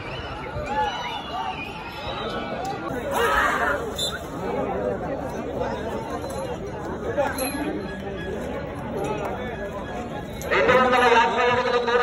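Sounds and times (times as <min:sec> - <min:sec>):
crowd chattering: 0:00.0 - 0:12.0.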